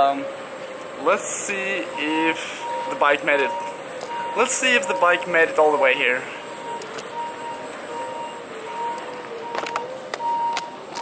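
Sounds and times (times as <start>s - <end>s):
hall ambience: 0.0s - 10.1s
electronic beeper beeping: 1.9s - 10.7s.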